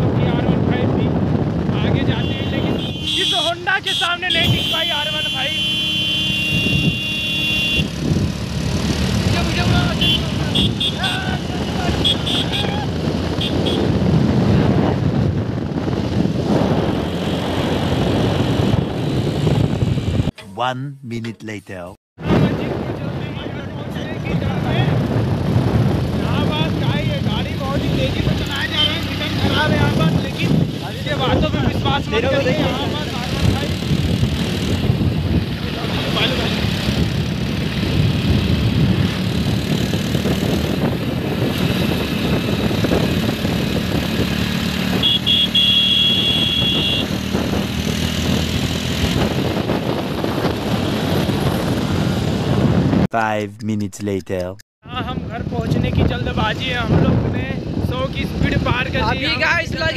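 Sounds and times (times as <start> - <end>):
wind rushing over microphone: 0.0 - 3.8, 7.8 - 20.3, 22.2 - 45.0, 46.1 - 53.1, 54.8 - 59.9
motorcycle running: 0.0 - 20.3, 23.8 - 53.0
voices talking: 20.3 - 22.0, 53.1 - 54.6.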